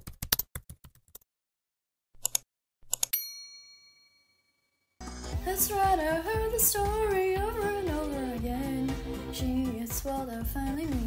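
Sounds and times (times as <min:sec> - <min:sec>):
bright bell ding: 0:03.2 - 0:04.5.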